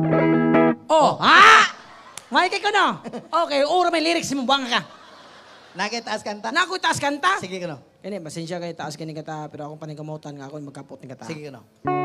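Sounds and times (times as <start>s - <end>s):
person crying out: 0.9s - 1.9s.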